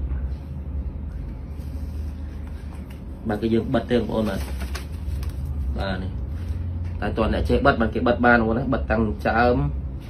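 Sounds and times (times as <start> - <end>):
steady low hum: 0.0 - 10.0
man speaking: 3.2 - 4.5.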